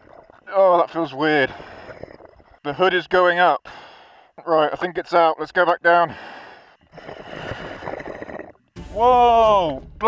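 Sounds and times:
diver breathing through regulator: 0:06.1 - 0:08.7.

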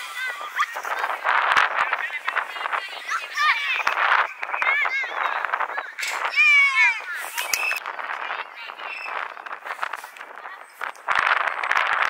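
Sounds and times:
children shouting: 0:00.0 - 0:09.2.

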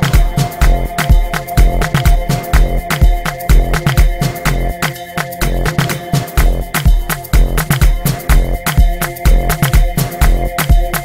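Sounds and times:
afro house music: 0:00.0 - 0:11.0
kick drum: 0:00.0 - 0:11.0.

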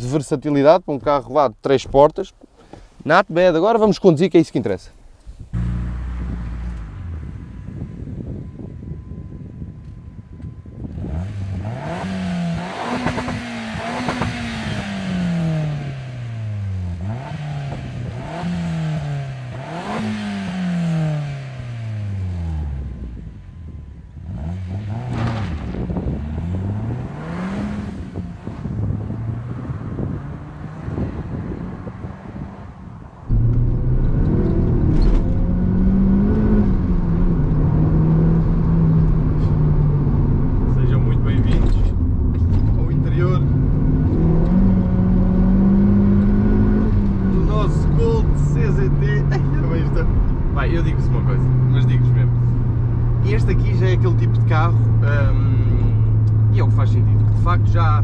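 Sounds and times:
car engine revving through gears: 0:05.6 - 0:08.4, 0:10.8 - 0:23.3, 0:24.1 - 0:57.8
car engine running inside cabin: 0:05.6 - 0:32.0, 0:33.2 - 0:58.0.

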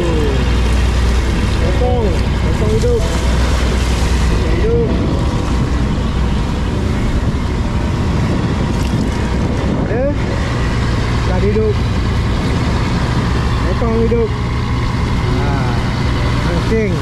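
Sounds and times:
boat engine droning: 0:00.0 - 0:17.0
seawater rushing from wake: 0:00.0 - 0:17.0.

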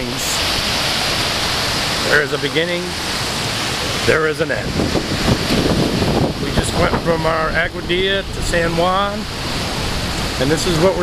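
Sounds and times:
waves breaking on beach: 0:00.0 - 0:11.0.

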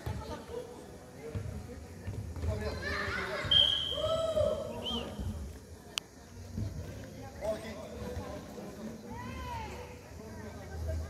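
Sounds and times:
high whistle blown: 0:03.5 - 0:05.1.

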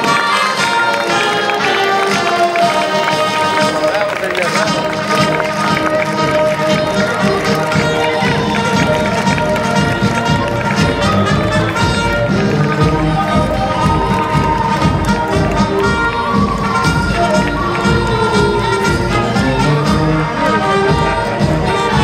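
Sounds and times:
marching footsteps: 0:00.0 - 0:22.0
parade band music: 0:00.0 - 0:22.0.

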